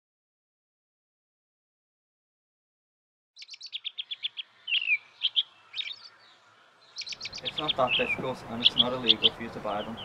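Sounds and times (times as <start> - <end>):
small songbirds chirping: 3.4 - 10.0.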